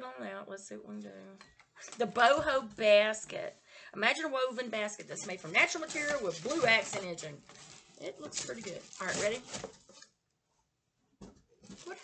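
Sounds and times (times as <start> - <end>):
woman speaking: 0.0 - 9.6.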